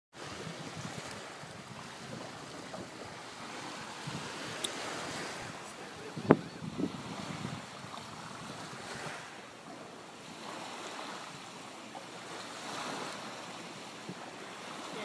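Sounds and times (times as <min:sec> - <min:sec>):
waves lapping on sand: 0:00.1 - 0:15.0
wind buffeting microphone: 0:00.2 - 0:11.6.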